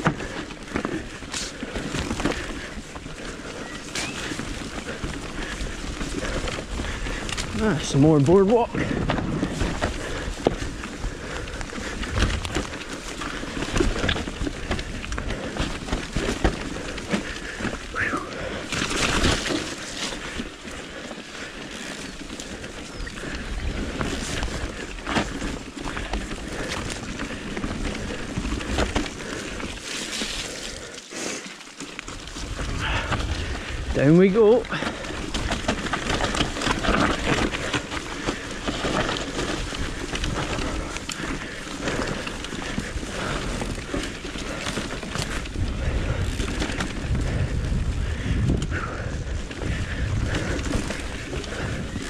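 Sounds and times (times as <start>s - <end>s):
bike tyres rattling over planks: 0.0s - 52.0s
rush of riding noise: 0.0s - 52.0s
bike knocking over bumps: 8.8s - 20.7s.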